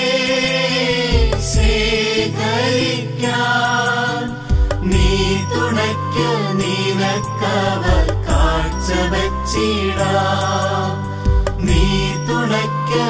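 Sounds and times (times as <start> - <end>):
light percussion strokes: 0.0 - 2.3, 3.2 - 5.8, 6.6 - 9.1
instrumental accompaniment with bass: 0.0 - 13.0
person chanting a sung melody: 0.0 - 13.0.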